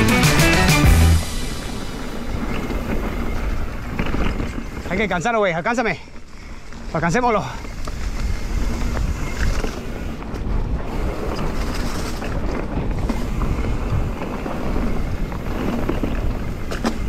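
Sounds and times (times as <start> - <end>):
bike tyres rolling and rattle: 1.0 - 17.0
wind buffeting microphone: 1.2 - 17.0.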